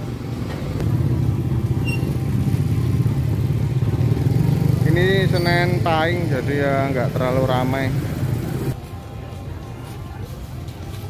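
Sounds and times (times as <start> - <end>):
motorcycle engines humming: 0.0 - 11.0.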